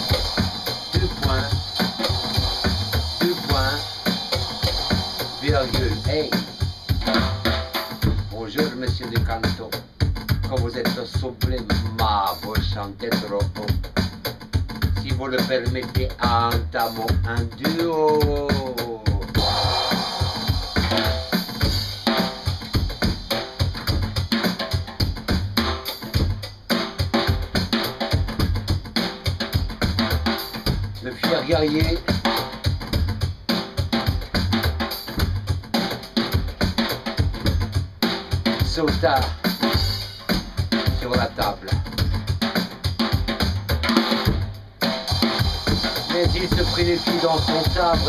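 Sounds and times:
drum kit played with sticks: 0:00.0 - 0:48.0
cymbal crash ringing: 0:19.4 - 0:22.4.

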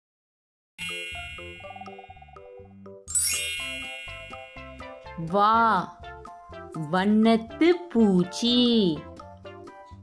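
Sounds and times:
sparkling shimmer sweeping upward: 0:00.8 - 0:02.3, 0:03.1 - 0:05.0
bright ding: 0:00.8 - 0:05.1
light background music: 0:00.8 - 0:10.0.

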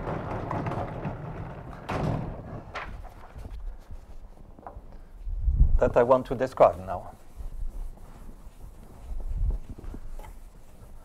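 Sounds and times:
sliding blackboard panels rumbling: 0:00.0 - 0:04.3.

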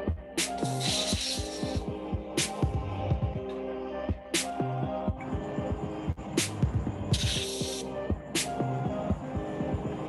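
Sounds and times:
background music with steady beat: 0:00.0 - 0:10.0
hand sanitiser spray hiss: 0:00.6 - 0:01.8.

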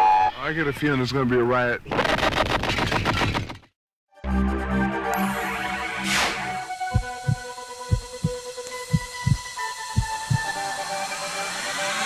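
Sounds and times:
heartbeat thumps: 0:06.8 - 0:10.6.

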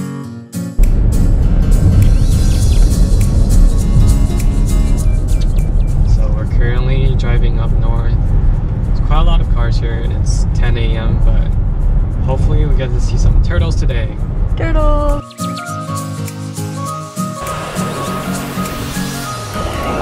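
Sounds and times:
music in a car: 0:00.1 - 0:12.7, 0:13.3 - 0:20.0
low road rumble: 0:00.8 - 0:15.3
voice: 0:06.0 - 0:08.2, 0:09.0 - 0:11.6, 0:12.2 - 0:15.3.

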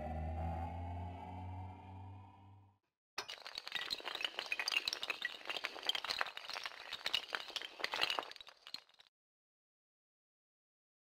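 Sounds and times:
glass shattering: 0:03.2 - 0:09.1.

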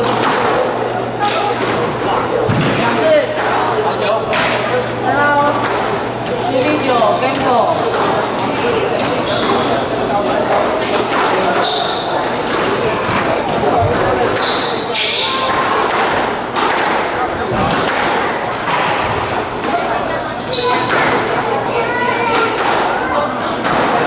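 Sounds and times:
squash ball smacking: 0:15.3 - 0:19.9, 0:20.6 - 0:21.3
shoes squeaking on wooden floor: 0:19.7 - 0:20.9.

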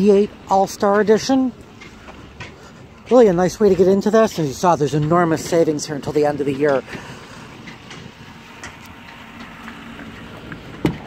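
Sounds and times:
wind on microphone: 0:06.8 - 0:11.0.

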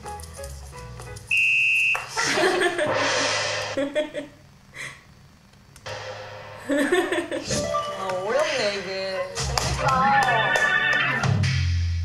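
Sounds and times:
electronic failure buzzer beep: 0:01.3 - 0:02.1
laughter: 0:02.1 - 0:02.9, 0:03.8 - 0:04.4, 0:06.7 - 0:07.5.

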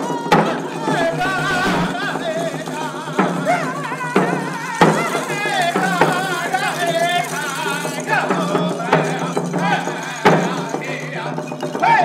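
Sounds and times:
hand drums beating slowly: 0:00.0 - 0:12.0
men singing in wavering voices: 0:00.0 - 0:12.0.

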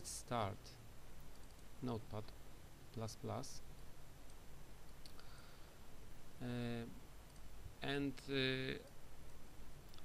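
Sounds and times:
low steady hum: 0:00.0 - 0:10.0
computer mouse clicks: 0:01.3 - 0:01.7, 0:07.2 - 0:07.5.

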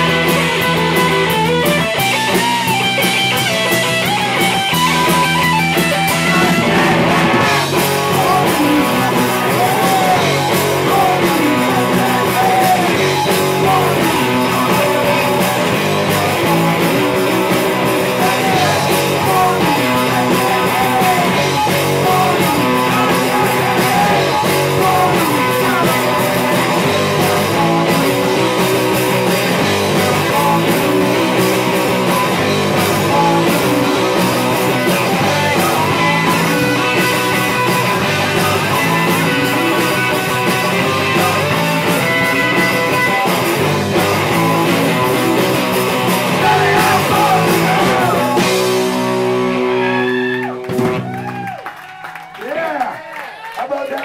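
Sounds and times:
live rock band playing: 0:00.0 - 0:51.5.

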